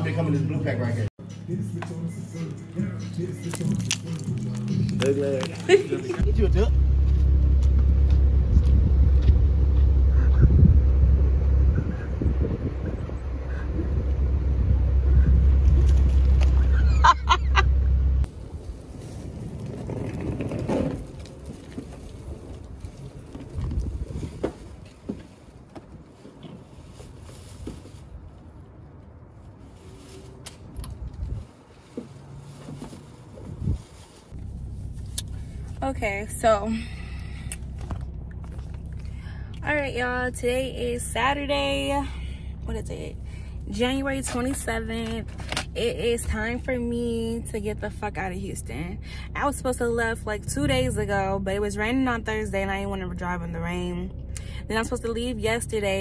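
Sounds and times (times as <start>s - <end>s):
car engine idling: 0.0s - 18.5s, 34.3s - 56.0s.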